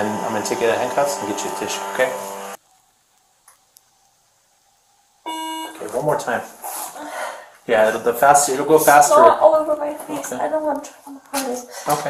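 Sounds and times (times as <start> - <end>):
person speaking: 0.0 - 2.3, 7.7 - 12.0.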